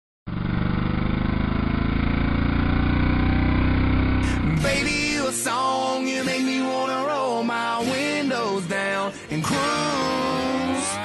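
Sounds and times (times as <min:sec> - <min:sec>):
vehicle engine idling: 0:00.3 - 0:05.3.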